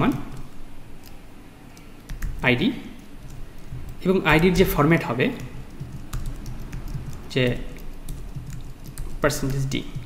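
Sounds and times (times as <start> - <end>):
computer keyboard key clicks: 0.0 - 2.4, 3.2 - 10.0.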